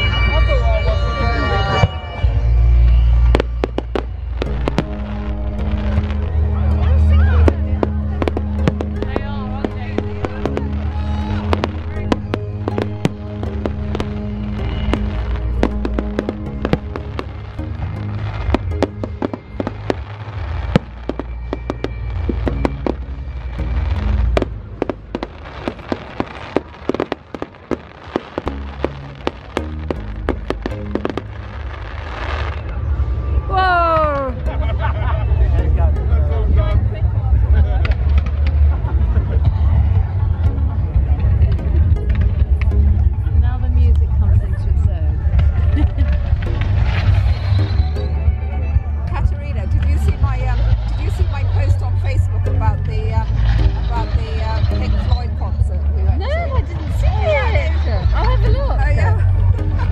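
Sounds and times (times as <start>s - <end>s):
falling firework whistle: 0.0s - 6.4s, 46.8s - 48.4s
music playing: 0.0s - 59.9s
fireworks bursting and crackling: 1.6s - 33.0s, 41.3s - 59.9s.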